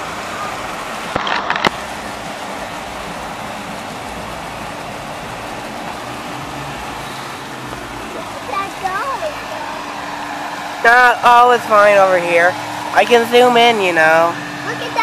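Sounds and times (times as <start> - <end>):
car wash water spray: 0.0 - 15.0
road traffic: 0.0 - 15.0.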